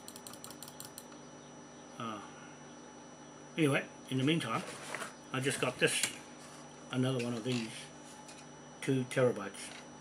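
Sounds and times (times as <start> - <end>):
computer mouse clicking: 0.0 - 1.1.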